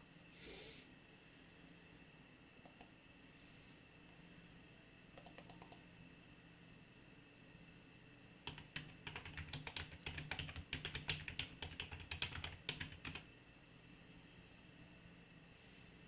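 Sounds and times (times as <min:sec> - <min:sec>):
typing on computer keyboard: 0:05.2 - 0:05.8, 0:08.5 - 0:13.3.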